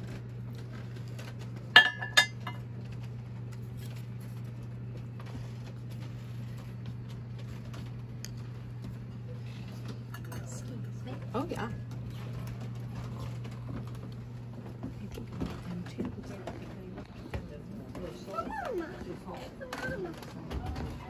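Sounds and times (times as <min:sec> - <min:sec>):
steady low hum: 0:00.0 - 0:21.0
porcelain clinking against glass bowl: 0:01.8 - 0:02.6.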